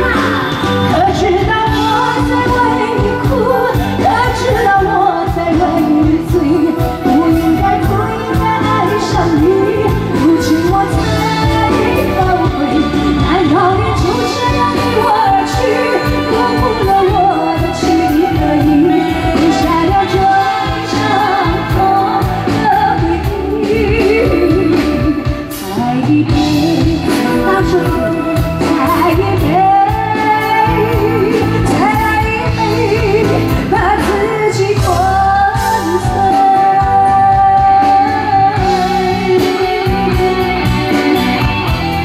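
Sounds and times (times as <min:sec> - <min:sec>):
backing band: 0:00.0 - 0:42.0
woman singing into a microphone: 0:00.0 - 0:42.0.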